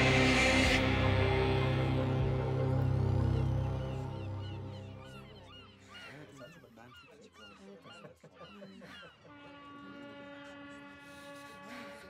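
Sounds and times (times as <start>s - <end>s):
soft sustained music: 0.0s - 6.0s.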